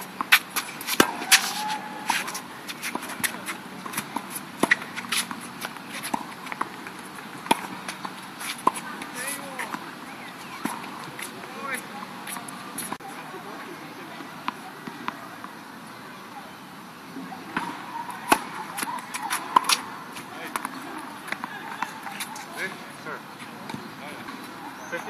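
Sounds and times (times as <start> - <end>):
tennis balls bouncing on hard court: 0.0 - 13.0, 17.5 - 25.0
tennis balls struck by rackets: 0.0 - 13.1, 17.2 - 25.0.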